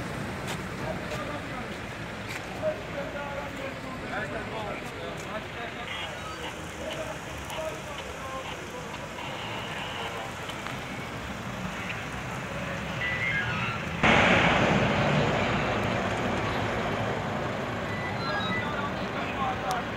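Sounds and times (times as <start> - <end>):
rushing road traffic: 0.0 - 19.9
faint voices: 0.7 - 14.0, 15.1 - 19.9.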